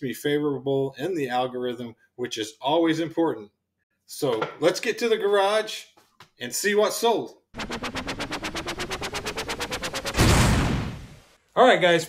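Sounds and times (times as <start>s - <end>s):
electronic stutter rising in pitch: 7.6s - 11.3s.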